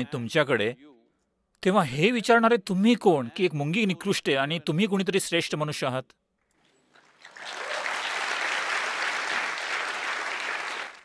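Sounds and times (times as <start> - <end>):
audience applauding: 7.0 - 11.0.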